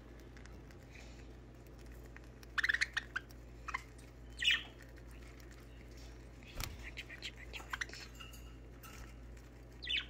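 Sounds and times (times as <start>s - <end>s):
budgies chirping: 1.9s - 10.0s.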